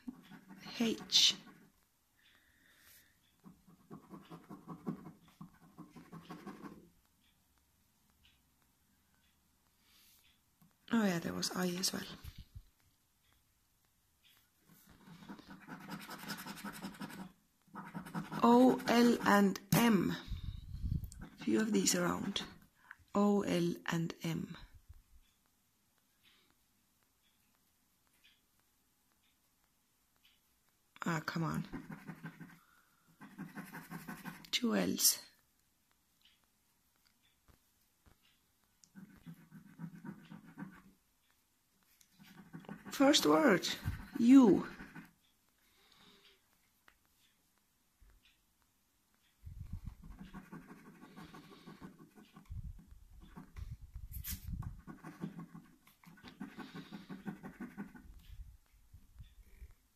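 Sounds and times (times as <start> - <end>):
scratchcard coating being scratched: 0.0 - 1.8, 14.9 - 19.8, 31.6 - 32.6, 33.2 - 34.6, 38.9 - 41.0, 42.1 - 45.2, 49.7 - 58.4.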